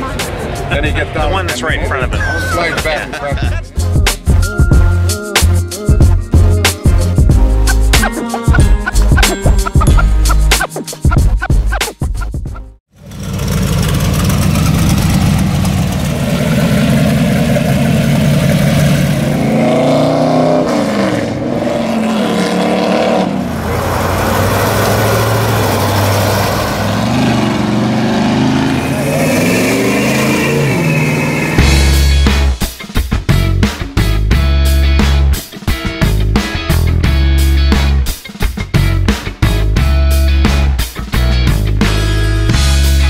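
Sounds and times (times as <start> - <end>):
car engines revving: 13.0 - 32.2.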